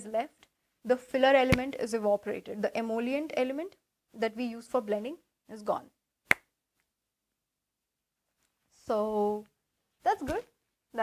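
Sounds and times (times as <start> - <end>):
finger snap: 6.3 - 6.5.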